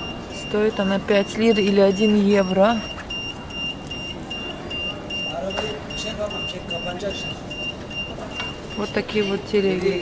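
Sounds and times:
high electronic beeping: 0.0s - 9.9s
faint voices: 0.1s - 10.0s.

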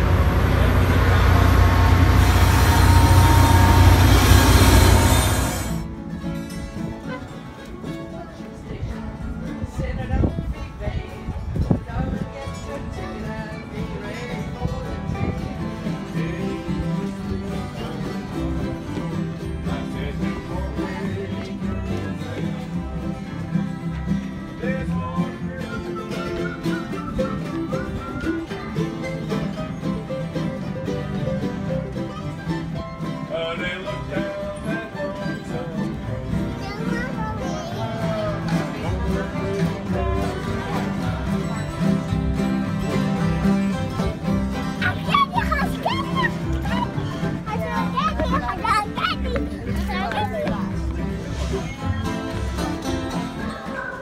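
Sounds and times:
bluegrass strummed string instruments: 0.0s - 54.0s.

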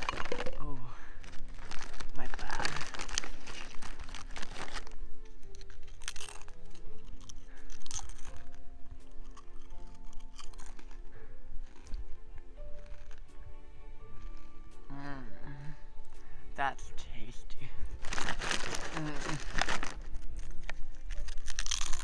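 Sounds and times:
chip bag crinkling: 0.0s - 12.1s, 12.7s - 13.2s, 18.0s - 22.0s
chips crunching: 0.0s - 13.3s, 18.0s - 22.0s
soft background music: 0.0s - 22.0s.

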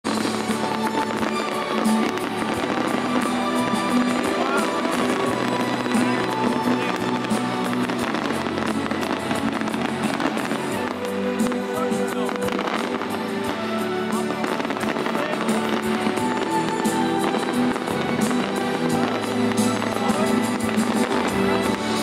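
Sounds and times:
fireworks bursting and crackling: 0.0s - 22.0s
music with long held notes: 0.0s - 22.0s.

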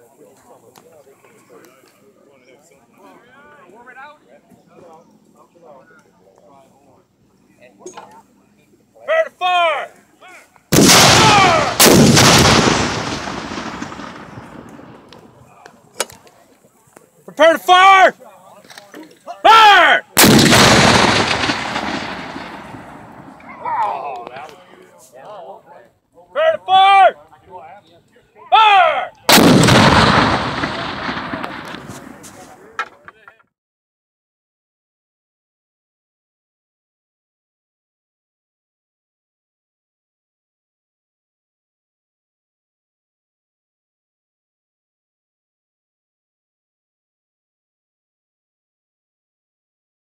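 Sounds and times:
cannon shots: 10.7s - 15.3s, 20.2s - 23.6s, 29.3s - 32.4s.

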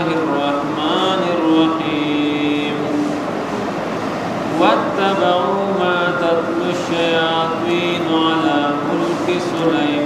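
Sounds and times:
solo voice chanting: 0.0s - 3.2s, 4.5s - 10.0s
steady background hiss: 0.0s - 10.0s.

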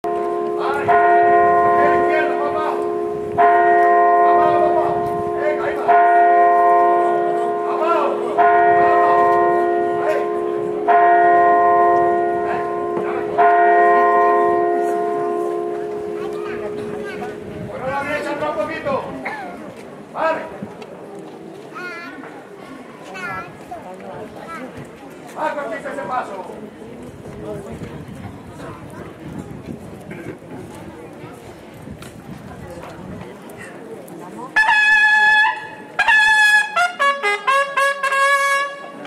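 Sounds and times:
church bell tolling: 0.0s - 19.2s.

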